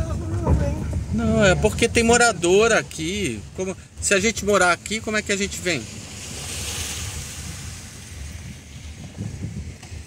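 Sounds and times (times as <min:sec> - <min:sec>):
car rolling rumble from inside: 0:00.0 - 0:10.0.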